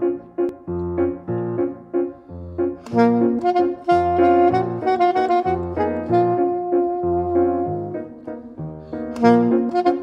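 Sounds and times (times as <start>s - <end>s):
grand piano repeated chords: 0.0s - 10.0s.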